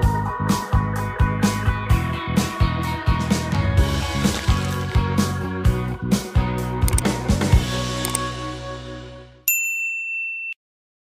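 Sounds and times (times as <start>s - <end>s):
notification bell ding: 9.5s - 10.6s.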